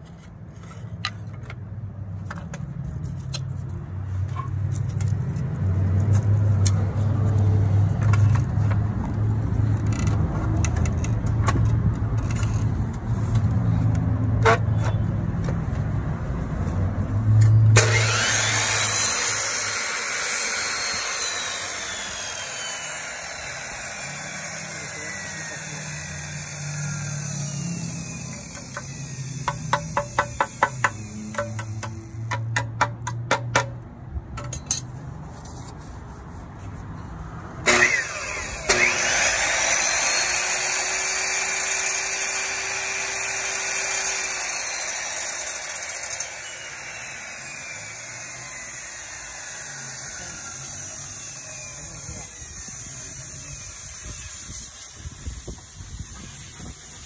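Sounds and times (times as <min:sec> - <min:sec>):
saw blade spinning down: 0:17.8 - 0:31.8, 0:37.7 - 0:54.4
miter saw motor whine: 0:17.8 - 0:31.9, 0:37.7 - 0:55.2.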